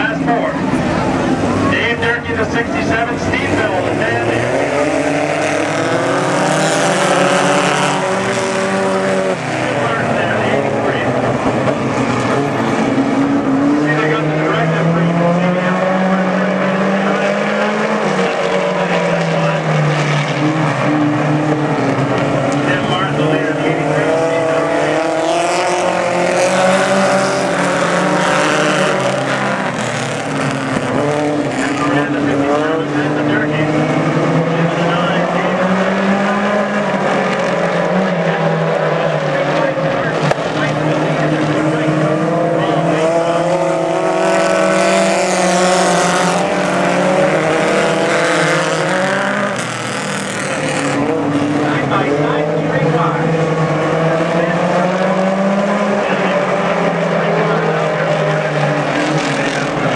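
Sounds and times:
race car engines: 0:00.0 - 0:59.9.

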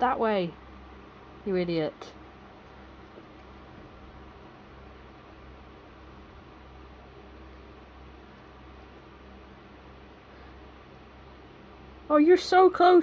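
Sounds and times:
low hum: 0:00.0 - 0:12.7
faint background hiss: 0:00.0 - 0:13.0.

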